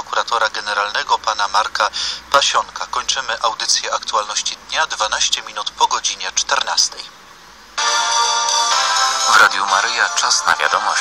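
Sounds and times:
radio news jingle chord: 0:07.8 - 0:11.0.

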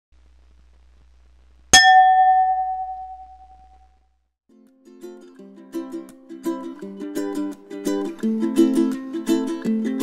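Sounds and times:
faint low hum: 0:00.1 - 0:04.3.

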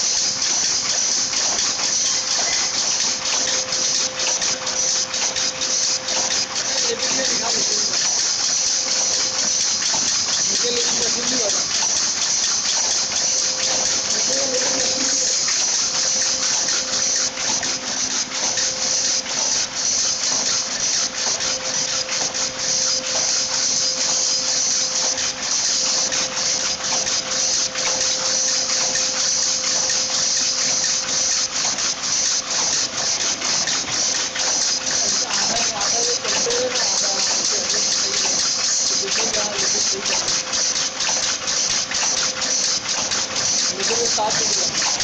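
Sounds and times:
power loom clattering: 0:00.0 - 0:45.0.

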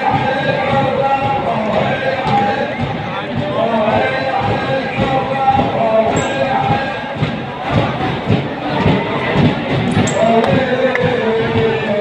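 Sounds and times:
crowd beating chests: 0:00.0 - 0:12.0
crowd chanting: 0:00.0 - 0:12.0
person reciting over loudspeakers: 0:00.0 - 0:12.0.

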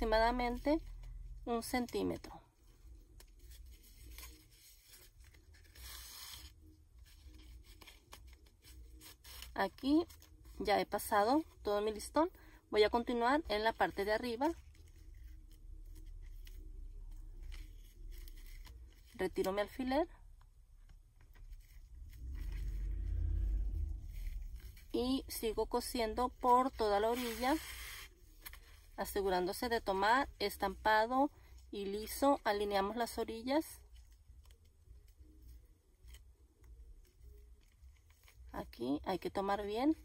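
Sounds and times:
ribbon rustling: 0:00.0 - 0:40.0
thread drawn through ribbon: 0:00.4 - 0:10.7, 0:20.8 - 0:29.1
low rumble: 0:20.3 - 0:26.9.

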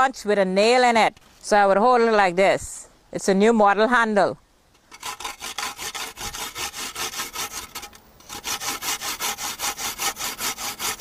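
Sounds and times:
coconut grating on tin grater: 0:04.9 - 0:11.0.

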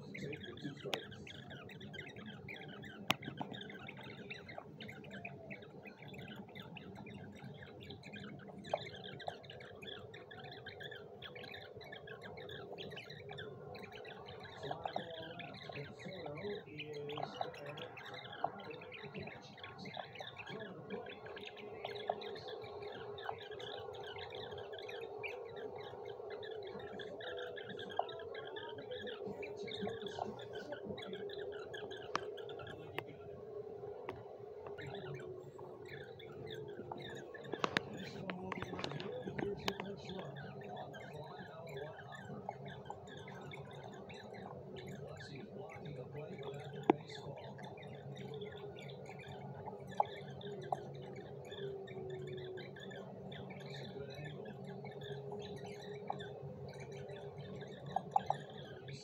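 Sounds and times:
sharp clicks: 0:36.3 - 0:40.2.

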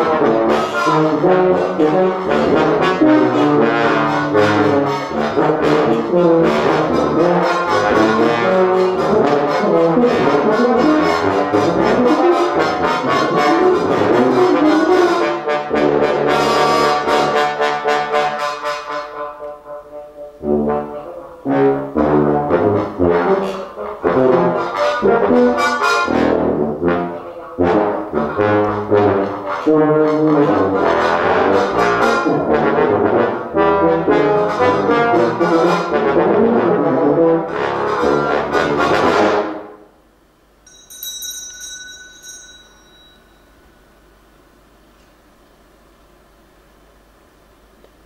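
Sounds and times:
loud low brass notes: 0:00.0 - 0:40.0
low brass ensemble playing: 0:00.0 - 0:40.0
bell ringing: 0:40.7 - 0:44.0.

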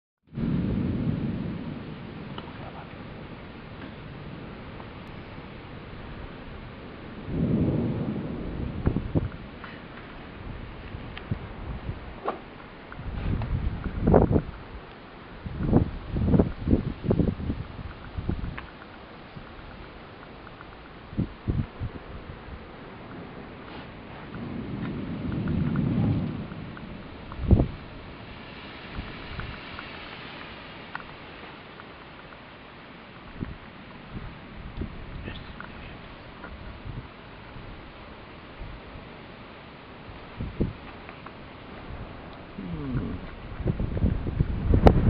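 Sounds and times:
thunder rumbling: 0:00.3 - 0:31.7, 0:32.6 - 0:45.0
steady background hiss: 0:00.4 - 0:45.0
faint ticks: 0:17.8 - 0:21.0, 0:24.3 - 0:27.5, 0:28.9 - 0:33.6, 0:34.8 - 0:36.6.

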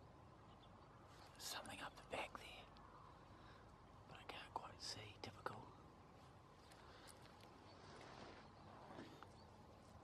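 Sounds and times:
person whispering: 0:01.4 - 0:02.8, 0:04.1 - 0:05.8.

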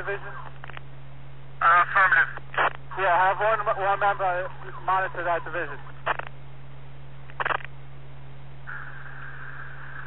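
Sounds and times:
high-pitched radio hiss: 0:00.0 - 0:10.0
low hum: 0:00.0 - 0:10.0
short burst of radio noise: 0:01.6 - 0:06.3, 0:07.3 - 0:07.7, 0:08.7 - 0:10.0.

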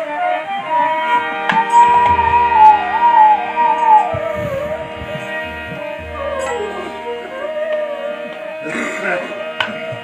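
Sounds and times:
bamboo flute melody: 0:00.0 - 0:10.0
harmonium drone: 0:00.0 - 0:10.0
low drum strokes: 0:01.6 - 0:07.4.

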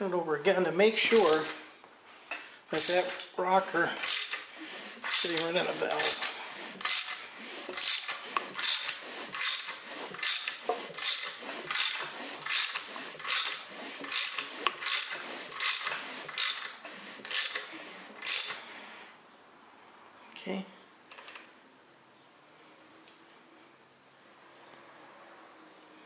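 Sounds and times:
hand ratchet clicking: 0:01.1 - 0:01.6, 0:02.7 - 0:03.4, 0:04.0 - 0:18.7.

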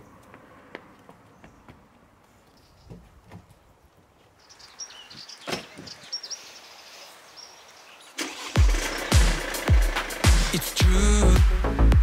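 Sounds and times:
birds chirping: 0:00.0 - 0:08.6
music with heavy kick-drum beat: 0:08.6 - 0:12.0.

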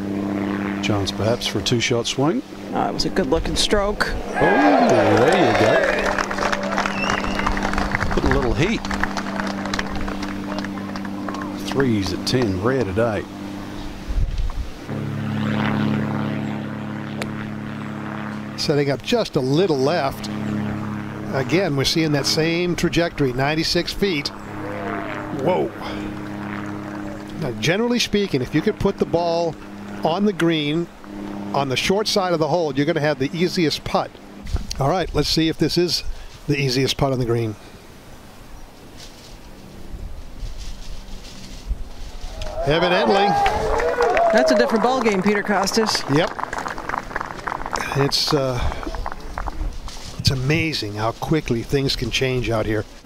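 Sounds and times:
low engine drone: 0:00.0 - 0:53.0
murmur of spectators: 0:04.1 - 0:11.6.

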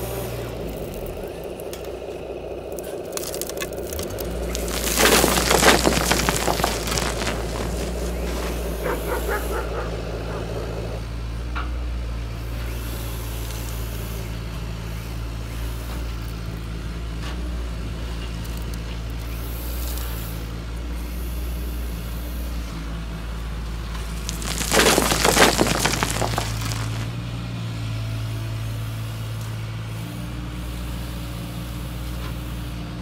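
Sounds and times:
stones pouring into truck bed: 0:03.0 - 0:09.6, 0:24.1 - 0:27.1.

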